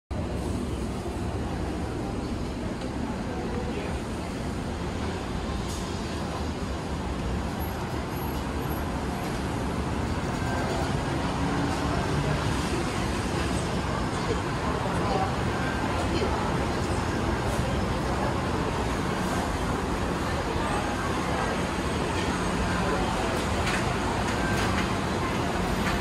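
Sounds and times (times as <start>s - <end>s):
road traffic rumble: 0.1s - 26.0s.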